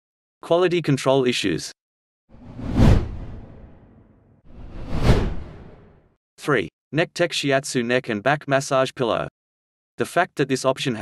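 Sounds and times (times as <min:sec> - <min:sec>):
whoosh transition effects: 0:02.4 - 0:06.0.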